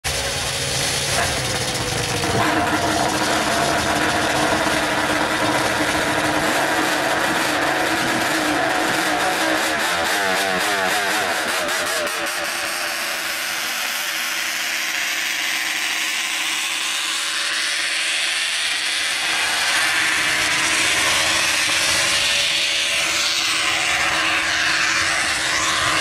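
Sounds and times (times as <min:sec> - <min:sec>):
snowmobile engines racing: 0:00.0 - 0:26.0.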